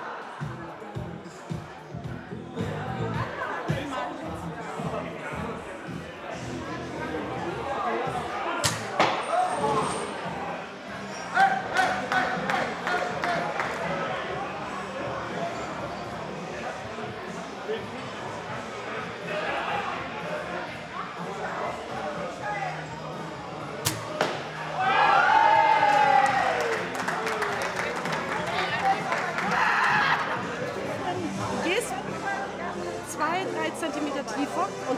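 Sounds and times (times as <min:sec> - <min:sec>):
crowd murmur: 0:00.0 - 0:34.9
crossbow shots snapping: 0:08.6 - 0:08.9, 0:23.8 - 0:24.4
crowd crying out: 0:24.5 - 0:27.0, 0:29.2 - 0:30.7.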